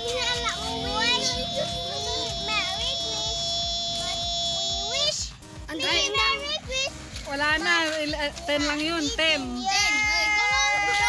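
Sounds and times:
children talking and calling out: 0:00.0 - 0:11.0
steady high tone: 0:00.6 - 0:04.6.

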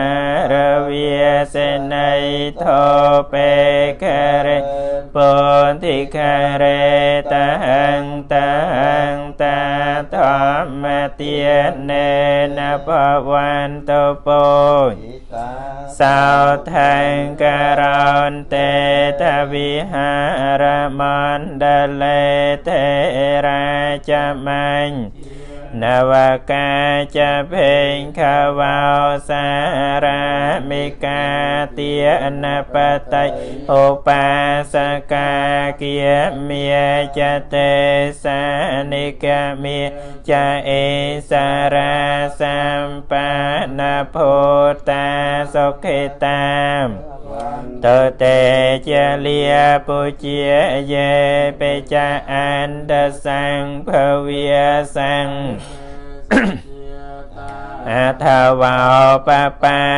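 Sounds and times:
monks chanting: 0:00.0 - 0:59.9.

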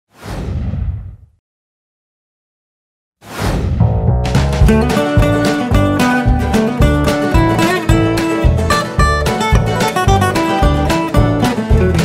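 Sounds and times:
whoosh with deep rumble: 0:00.2 - 0:01.4.

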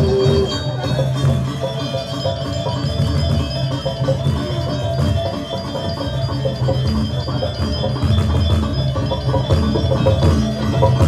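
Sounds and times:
gamelan music: 0:00.0 - 0:11.0.

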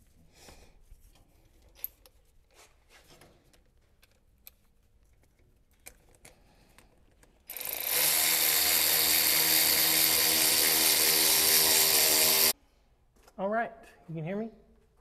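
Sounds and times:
cordless power tool running: 0:07.5 - 0:12.6.

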